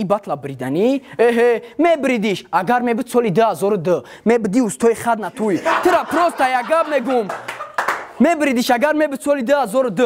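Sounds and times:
hand claps: 7.1s - 8.2s.

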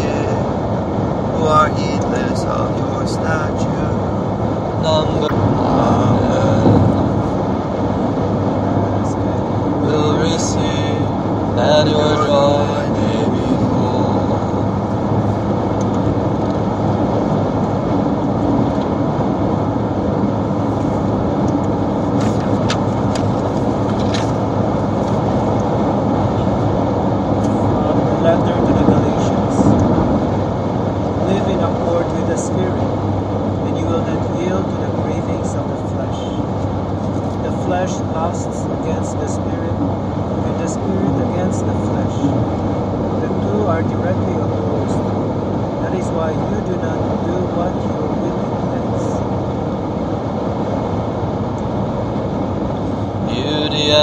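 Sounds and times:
low background hum: 0.0s - 54.0s.

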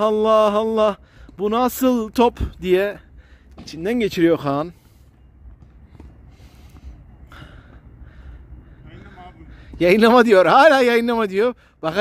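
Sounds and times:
steady low rumble: 1.0s - 10.0s.

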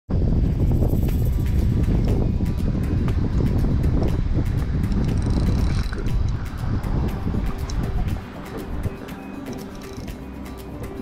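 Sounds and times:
background music: 0.1s - 11.0s
wind buffeting microphone: 0.1s - 11.0s.

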